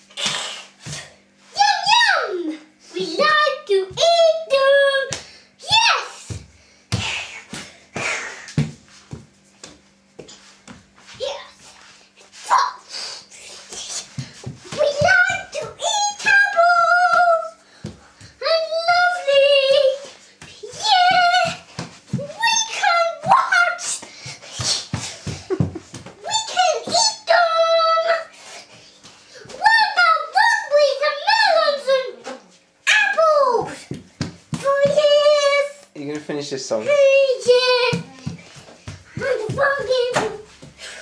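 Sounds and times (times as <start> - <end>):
child singing in high voice: 14.7 - 17.6, 18.4 - 24.0, 26.2 - 28.3, 29.4 - 32.3, 34.6 - 35.8, 36.8 - 38.4, 39.1 - 40.5.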